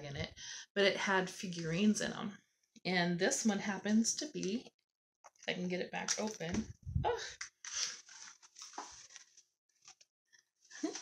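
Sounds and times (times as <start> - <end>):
rustling handling noise: 6.2 - 10.0.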